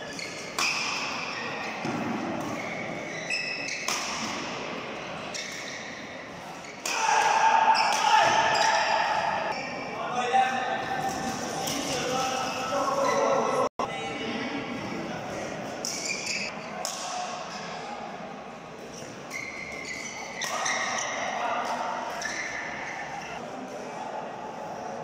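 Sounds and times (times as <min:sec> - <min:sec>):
shoes squeaking on court: 0:00.0 - 0:06.9, 0:15.8 - 0:16.6, 0:18.9 - 0:23.4
racket striking shuttlecock: 0:03.7 - 0:04.6, 0:06.8 - 0:08.8.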